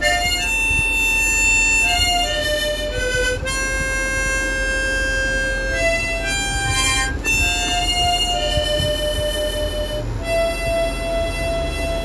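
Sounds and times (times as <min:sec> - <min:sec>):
harmonica playing long notes: 0:00.0 - 0:12.0
steady low rumble: 0:00.0 - 0:12.0.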